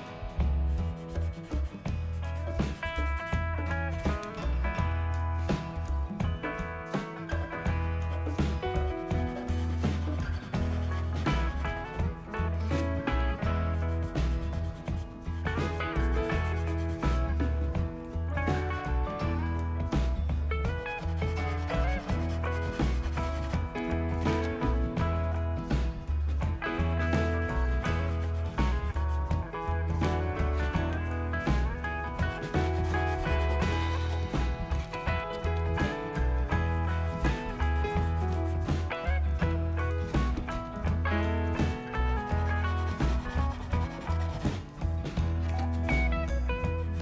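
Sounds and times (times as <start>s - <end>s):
background music with bass line: 0.0s - 47.0s
chalk pastel rubbing on paper: 0.7s - 3.3s, 9.1s - 11.8s, 13.7s - 17.2s, 20.9s - 23.6s, 27.4s - 29.2s, 32.3s - 34.8s, 36.6s - 38.8s, 42.3s - 44.7s.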